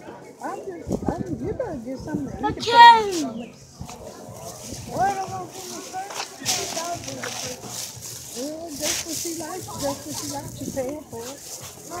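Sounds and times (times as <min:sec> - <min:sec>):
faint background voices: 0:00.0 - 0:12.0.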